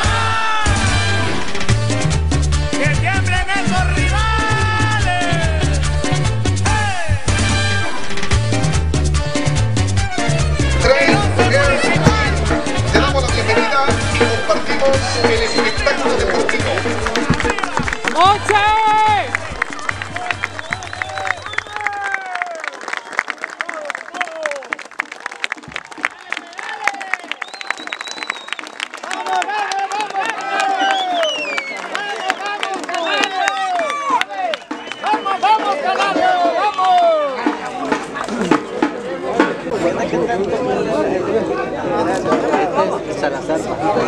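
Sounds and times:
crowd singing and shouting: 0:00.0 - 0:01.8, 0:10.6 - 0:21.2, 0:34.3 - 0:43.1
music with steady drum beat: 0:00.0 - 0:21.2, 0:37.3 - 0:39.7
crowd clapping: 0:10.6 - 0:39.0.

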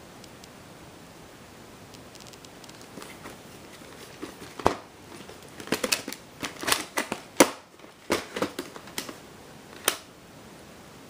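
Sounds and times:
plastic case clicks and clacks: 0:03.9 - 0:09.2, 0:09.8 - 0:10.1.

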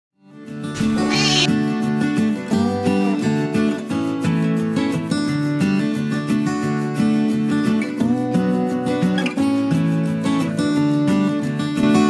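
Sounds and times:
kitten mewing: 0:00.8 - 0:01.5.

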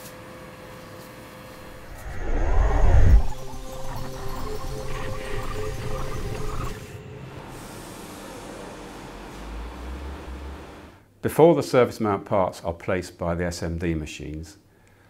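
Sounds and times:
whoosh transition effect: 0:01.6 - 0:07.6
music sting of held notes: 0:02.0 - 0:10.0.

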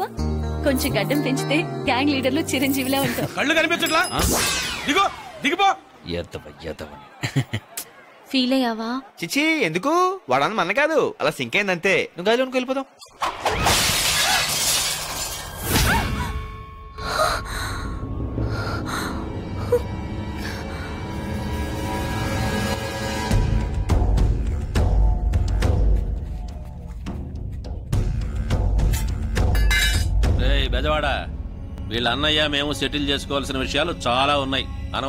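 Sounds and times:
glass shattering: 0:03.8 - 0:05.0, 0:13.2 - 0:16.5, 0:29.6 - 0:30.1.

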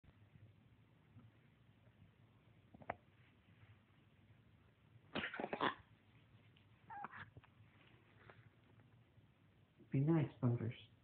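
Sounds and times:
kitten vocalizing: 0:06.9 - 0:07.4.

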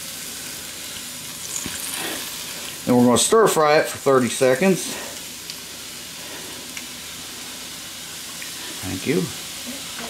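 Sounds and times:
sauce sizzling in a wok: 0:00.0 - 0:10.0.

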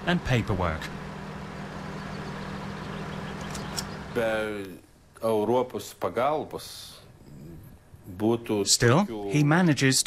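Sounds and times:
machine humming: 0:00.0 - 0:05.1.

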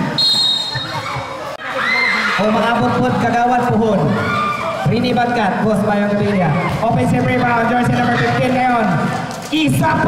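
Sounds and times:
referee's whistle blowing: 0:00.0 - 0:01.1
crowd noise with shouting: 0:00.0 - 0:10.0.

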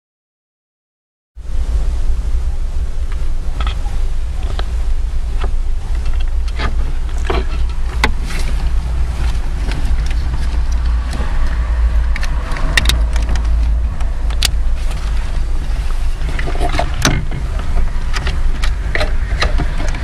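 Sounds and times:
steady low rumble: 0:01.4 - 0:20.0.

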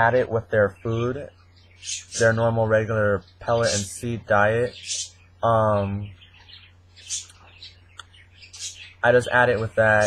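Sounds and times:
small birds chirping: 0:00.0 - 0:10.0
steady low hum: 0:00.0 - 0:10.0.

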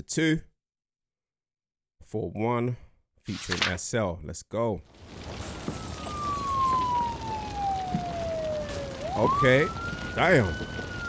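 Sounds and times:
siren wail falling in pitch: 0:05.1 - 0:11.0.

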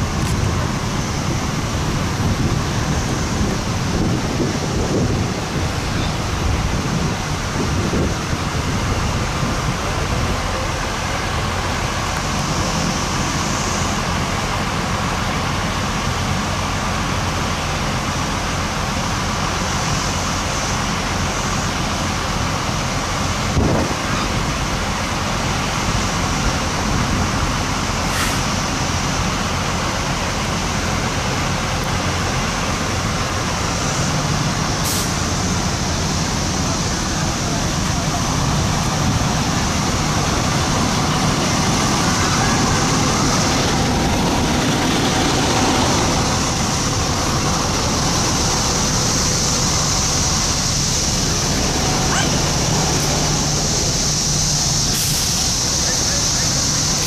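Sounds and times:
diesel engines idling: 0:00.0 - 0:57.0
indistinct voices: 0:31.0 - 0:57.0.

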